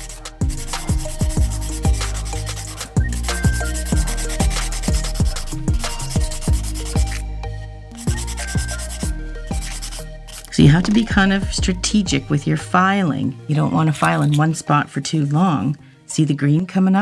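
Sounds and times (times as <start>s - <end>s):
nail file rubbing on a nail: 0.0s - 7.2s, 8.0s - 10.8s
music with a bass beat: 0.0s - 12.0s.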